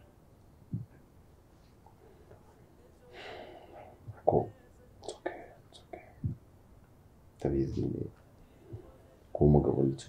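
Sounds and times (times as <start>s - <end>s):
person whispering: 2.1s - 6.3s.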